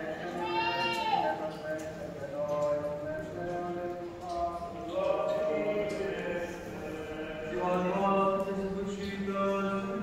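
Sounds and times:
male voices chanting: 0:00.0 - 0:10.0.

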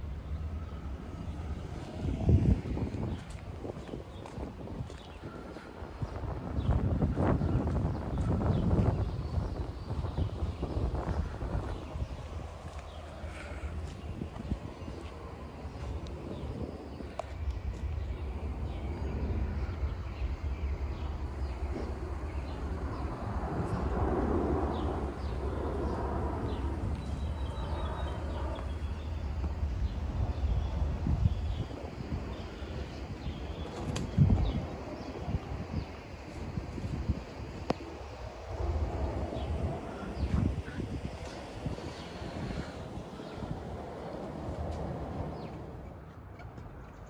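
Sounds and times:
steady low rumble: 0:00.0 - 0:47.0
open air hiss: 0:10.3 - 0:45.5.

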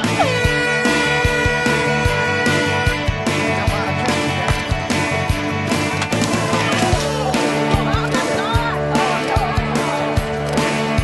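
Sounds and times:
air horn blast: 0:00.0 - 0:03.6
rock music: 0:00.0 - 0:11.0.

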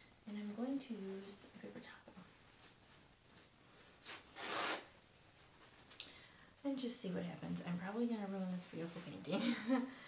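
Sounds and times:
paper towel ripping: 0:04.0 - 0:04.9.

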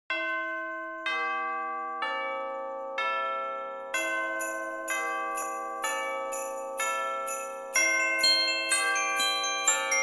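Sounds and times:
bell-like chimes ringing: 0:00.1 - 0:10.0.

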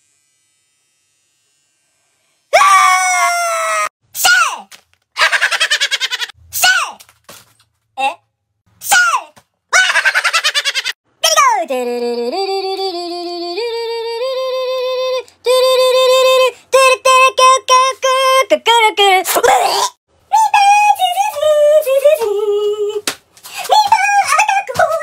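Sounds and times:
high wordless singing voice: 0:11.2 - 0:25.0.

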